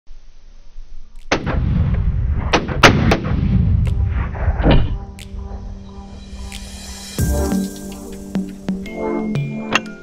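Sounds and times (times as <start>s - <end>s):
rifle shot rumbling: 1.3s - 5.0s.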